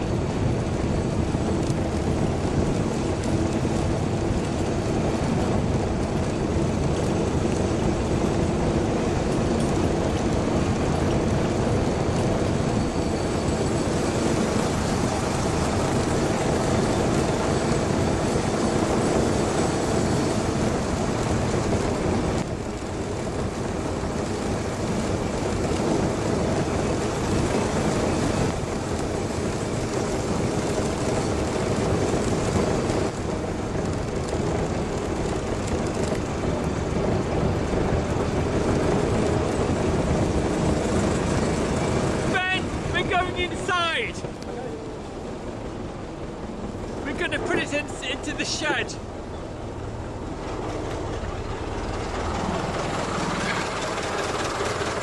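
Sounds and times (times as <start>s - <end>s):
miniature train wheels rumbling: 0.0s - 55.0s.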